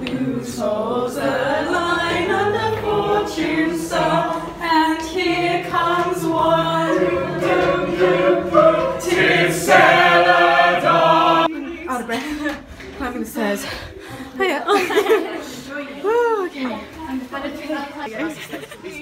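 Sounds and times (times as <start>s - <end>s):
group singing unaccompanied: 0.0s - 11.9s.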